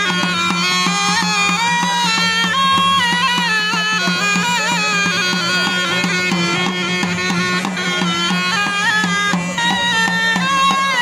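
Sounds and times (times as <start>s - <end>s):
reed pipe melody with drone: 0.0s - 11.0s.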